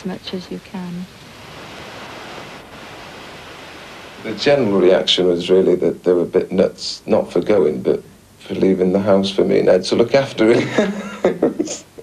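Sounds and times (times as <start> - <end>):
ocean surf washing onto beach: 0.0 - 5.3.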